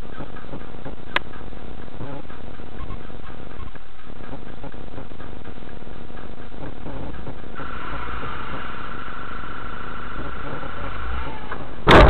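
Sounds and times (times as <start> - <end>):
light ticks: 0.0 - 7.6
car engine idling hum: 0.0 - 12.0.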